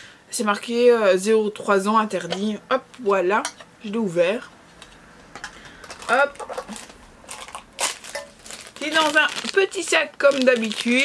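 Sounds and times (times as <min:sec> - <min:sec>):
plastic bag crinkling: 0:05.8 - 0:11.0.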